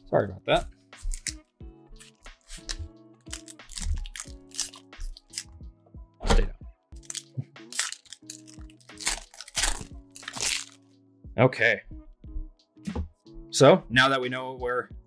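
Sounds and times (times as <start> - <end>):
foil wrappers crinkling: 2.0 - 5.5, 7.0 - 10.8.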